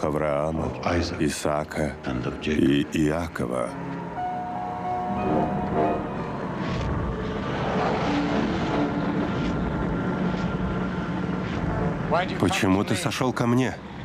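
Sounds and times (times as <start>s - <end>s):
orchestral score held notes: 0.0s - 11.1s
flames rumbling: 6.4s - 12.8s.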